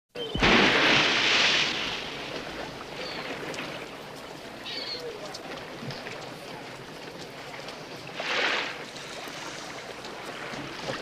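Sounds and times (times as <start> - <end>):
pool water washing: 0.3 - 11.0.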